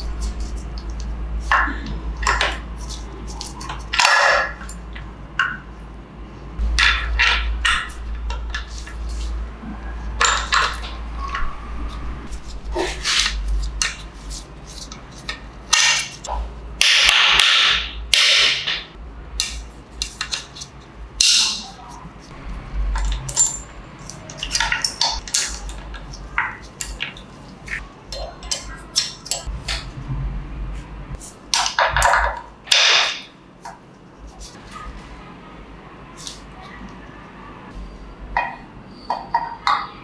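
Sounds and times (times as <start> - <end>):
metal parts scraping: 20.0 - 29.5
metal gears clicking and clinking: 22.8 - 29.5.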